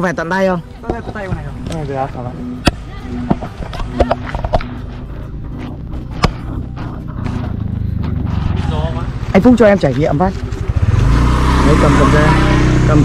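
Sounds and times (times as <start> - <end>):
scooter engine approaching: 1.8 - 13.0.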